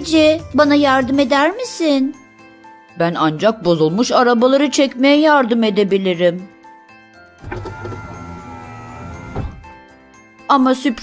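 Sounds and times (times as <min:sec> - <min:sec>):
background music: 0:00.0 - 0:11.0
electric motor whirring: 0:07.4 - 0:09.6.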